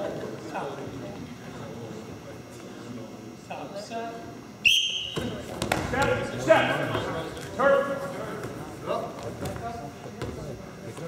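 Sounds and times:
referee's whistle blast: 4.6s - 5.4s.

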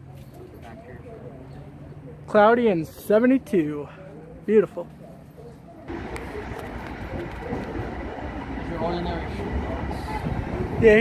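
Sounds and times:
electric train rumble and rail noise: 5.9s - 11.0s.

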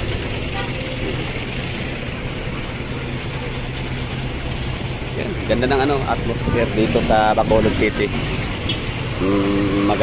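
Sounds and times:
diesel engine idling: 0.0s - 10.0s
street traffic: 0.0s - 10.0s.

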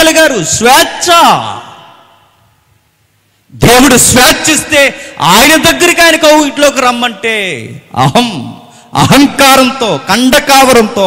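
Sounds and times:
man speaking with echo: 0.0s - 2.5s, 3.5s - 11.0s.

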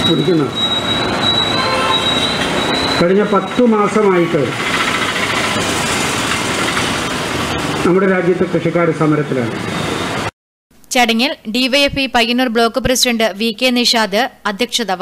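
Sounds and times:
passing road traffic: 0.0s - 10.3s.

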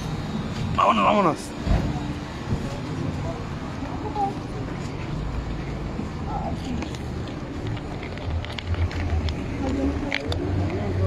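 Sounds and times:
street noise: 0.0s - 11.0s
vehicle engine rumbling: 0.0s - 11.0s
faint voices: 0.6s - 11.0s.

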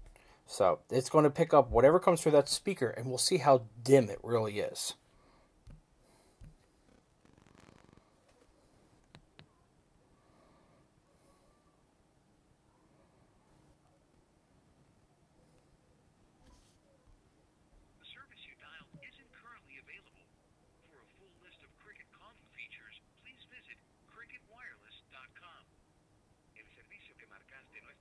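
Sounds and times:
faint taps: 5.6s - 6.7s, 8.3s - 9.5s
faint voice through phone speaker: 18.0s - 25.7s, 26.6s - 28.0s.

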